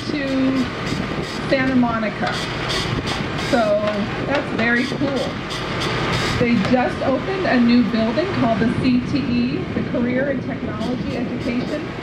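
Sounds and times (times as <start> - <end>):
steady background noise: 0.0 - 12.0
person talking indistinctly: 3.5 - 5.4.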